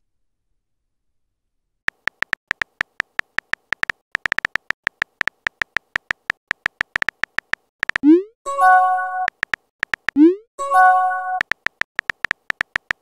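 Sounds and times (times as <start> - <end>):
phone keyboard typing clicks: 1.9 - 8.2, 9.1 - 10.4, 11.1 - 13.0.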